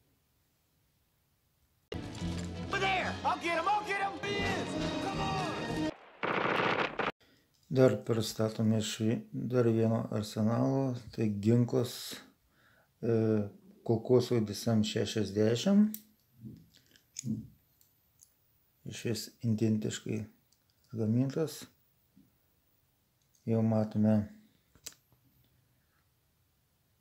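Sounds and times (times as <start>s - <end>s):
film music: 1.9s - 6.2s
rapid automatic gunfire: 6.0s - 7.1s.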